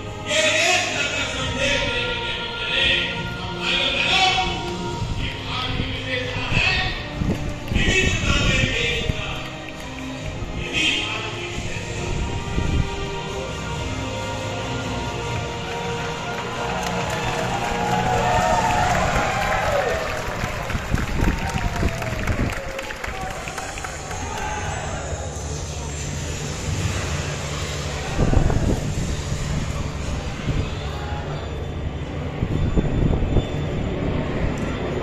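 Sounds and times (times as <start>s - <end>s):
music on loudspeakers: 0.0s - 22.5s
crowd chattering: 14.8s - 35.0s
cheering and clapping: 15.4s - 25.5s.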